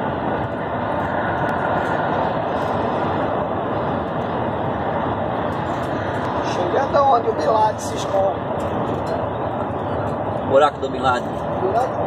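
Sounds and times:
engine and road noise in cab: 0.0 - 12.0.

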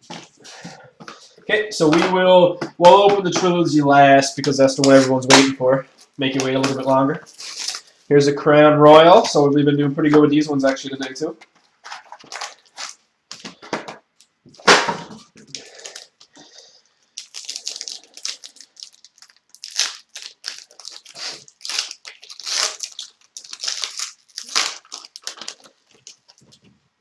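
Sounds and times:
foil wrapper crinkling and tearing: 6.0 - 8.0, 11.6 - 13.4, 15.3 - 16.3, 17.0 - 26.7.

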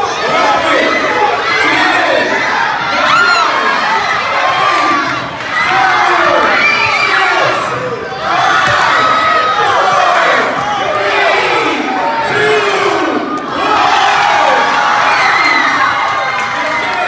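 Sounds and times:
children shouting and cheering: 0.0 - 17.0.

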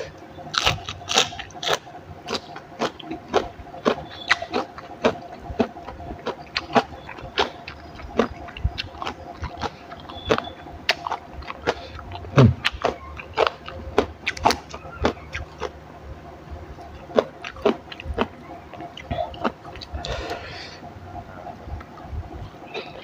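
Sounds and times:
crunchy chewing of vegetables: 0.0 - 23.0.

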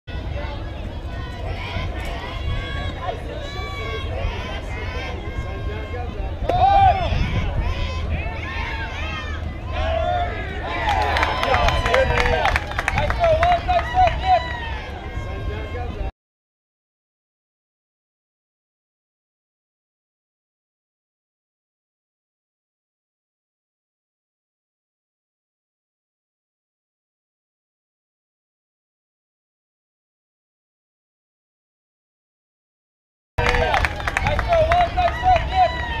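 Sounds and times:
voices calling out and cheering: 0.1 - 16.1, 33.4 - 36.0
wind rumble on microphone: 0.1 - 16.1
sharp claps: 10.9 - 13.8, 33.4 - 35.5.

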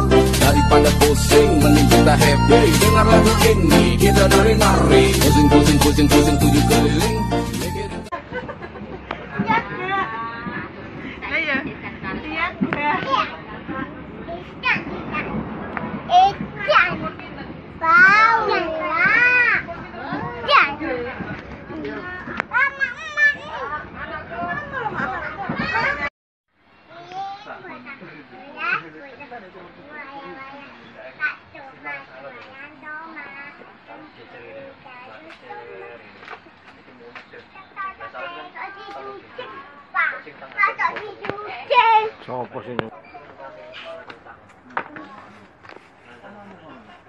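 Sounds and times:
children chattering and calling out: 9.0 - 26.1, 26.7 - 42.4.

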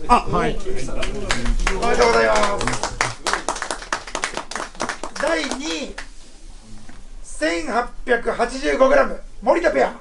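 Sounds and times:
people applauding: 1.0 - 6.1.

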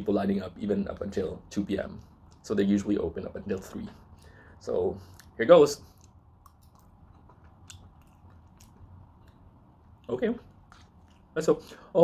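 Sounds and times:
faint chewing: 5.0 - 11.9.

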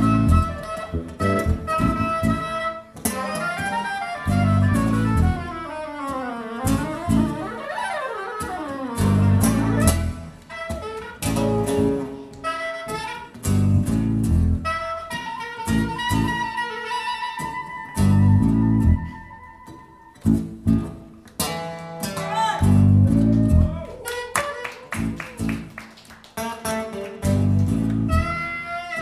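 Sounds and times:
soprano saxophone melody: 0.0 - 20.6, 22.4 - 25.6, 27.6 - 29.0
jazz band playing: 0.0 - 21.6, 22.6 - 25.8, 26.4 - 29.0.

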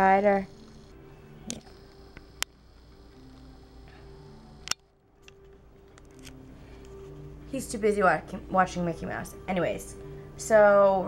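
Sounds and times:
television low held tones: 0.0 - 5.0
sharp clicks: 1.4 - 3.5.

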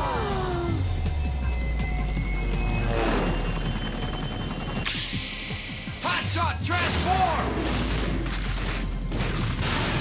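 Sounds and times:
cartoon music with low drone: 0.0 - 10.0.

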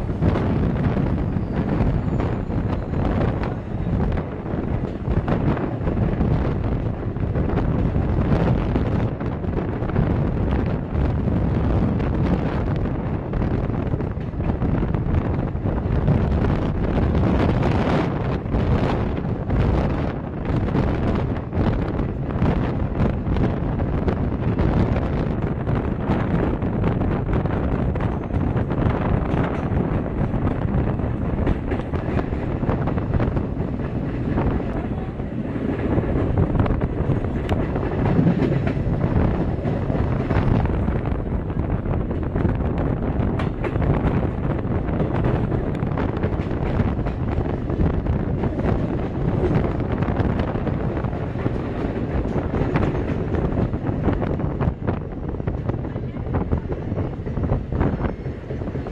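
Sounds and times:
train wheels clattering on rails: 0.0 - 58.9
wind buffeting microphone: 0.0 - 58.9.

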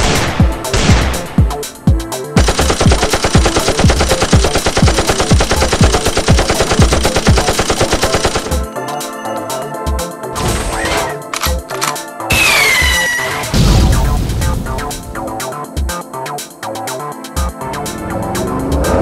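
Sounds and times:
music with kick drum beat: 0.0 - 8.7, 13.6 - 19.0
rapid machine gun fire: 2.4 - 8.6.

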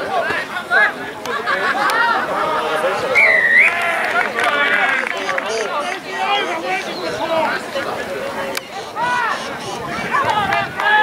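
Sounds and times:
people shouting and calling: 0.0 - 11.0.

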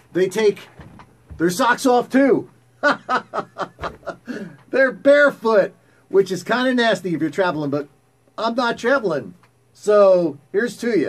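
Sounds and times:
man chuckling: 2.8 - 4.6.

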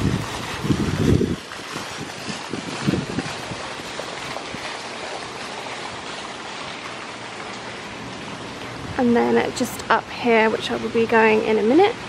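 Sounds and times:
wind buffeting microphone: 0.0 - 7.0
fountain water splashing: 0.0 - 12.0.

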